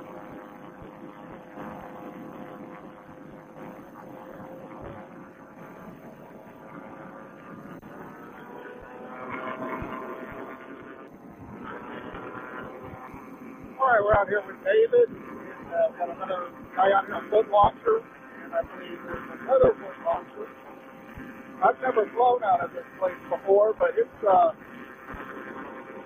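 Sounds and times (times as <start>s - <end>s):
paramotor engine droning: 0.0s - 26.0s.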